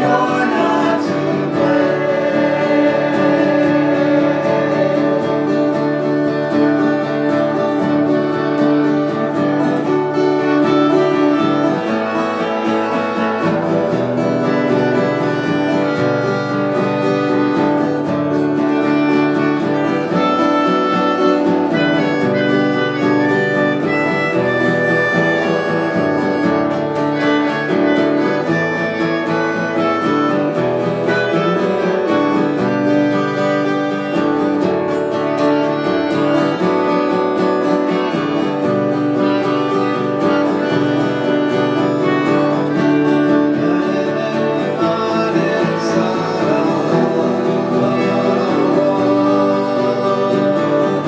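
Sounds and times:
acoustic guitar: 0.0s - 51.0s
melody of long held notes: 0.0s - 51.0s.

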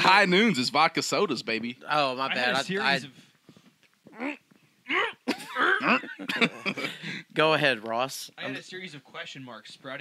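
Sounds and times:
men exclaiming and laughing: 4.9s - 7.6s.

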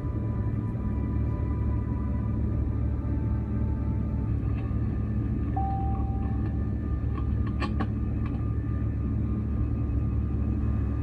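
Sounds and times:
engine and airflow rumble: 0.0s - 11.0s
faint steady whine: 0.0s - 11.0s
short steady tone: 5.5s - 6.6s.

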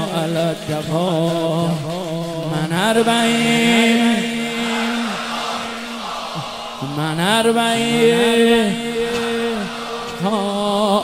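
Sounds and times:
crowd of voices: 0.0s - 11.0s
man chanting sung line: 0.0s - 11.0s.

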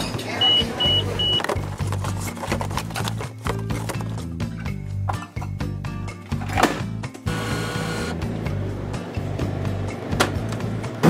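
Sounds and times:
vending machine high beeps: 0.3s - 1.4s.

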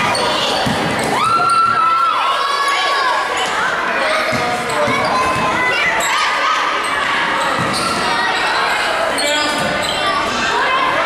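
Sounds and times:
voices calling out in a hall: 0.0s - 11.0s.

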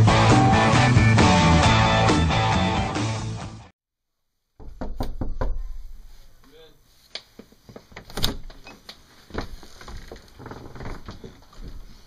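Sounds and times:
knuckles knocking on door: 4.6s - 5.7s.

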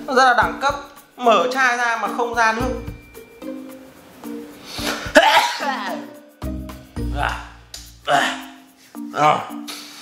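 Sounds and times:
music with held notes: 0.0s - 10.0s
man sneezing: 4.8s - 6.0s, 7.1s - 8.6s.

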